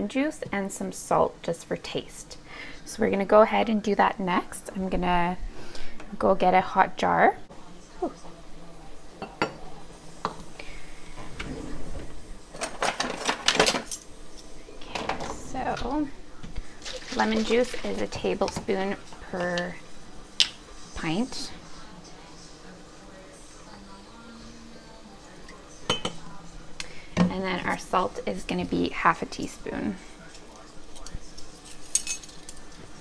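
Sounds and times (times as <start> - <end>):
kitchen utensils clinking: 12.5 - 16.0, 16.8 - 19.7, 30.3 - 32.8.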